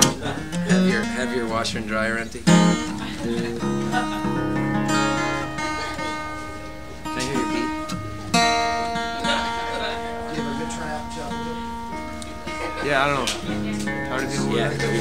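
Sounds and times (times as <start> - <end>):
acoustic guitar strumming chords: 0.0 - 15.0.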